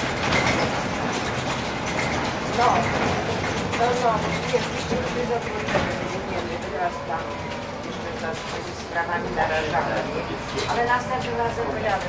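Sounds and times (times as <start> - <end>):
bus engine and road noise: 0.0 - 12.0
rattles from bus body: 0.0 - 12.0.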